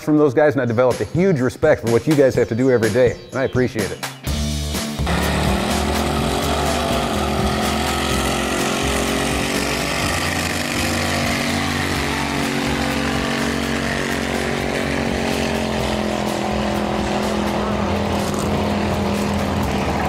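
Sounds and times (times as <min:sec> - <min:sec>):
engine at high revs: 0:04.7 - 0:20.0
spinning tires hissing: 0:04.8 - 0:20.0.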